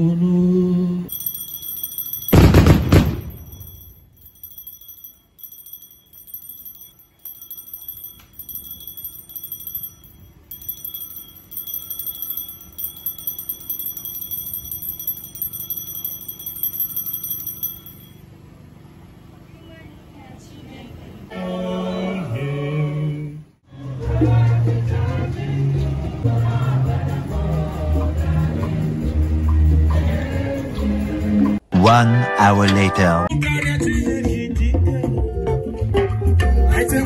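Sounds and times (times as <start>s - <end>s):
altar bells jingling: 1.1s - 18.3s.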